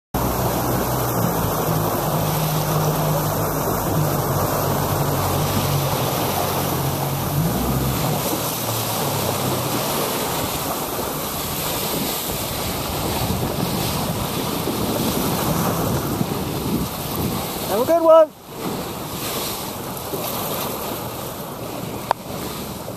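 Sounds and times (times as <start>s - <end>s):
rushing choppy water: 0.1s - 22.9s
wind buffeting microphone: 0.2s - 22.9s.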